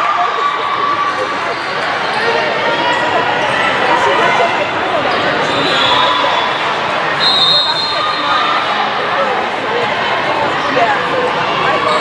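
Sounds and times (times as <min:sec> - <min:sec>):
crowd of voices in gym: 0:00.0 - 0:12.0.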